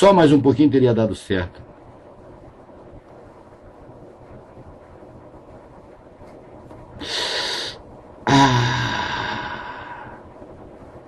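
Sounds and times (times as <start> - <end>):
low room noise: 0.0 - 11.0
breath blown into microphone: 7.0 - 10.2.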